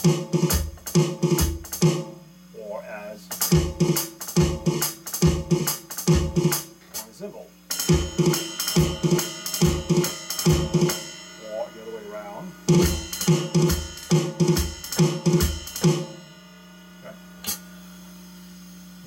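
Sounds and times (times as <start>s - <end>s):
amplifier hum: 0.0s - 19.0s
electronic drum cymbal hits: 0.0s - 19.0s.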